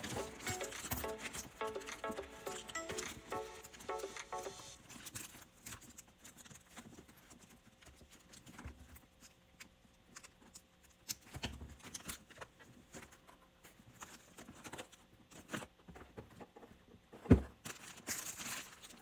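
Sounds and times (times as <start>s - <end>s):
background music: 0.0s - 4.9s
plastic wrap crinkling: 17.6s - 19.0s.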